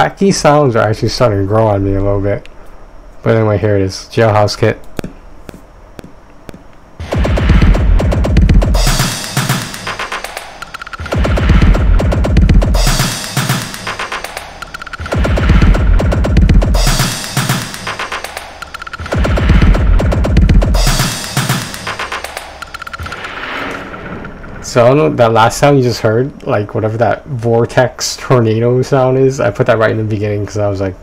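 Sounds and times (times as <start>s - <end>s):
heavy bass: 7.0s - 25.8s
soft drum machine ticks: 7.5s - 23.0s
deep swirling tornado sample: 23.0s - 26.8s.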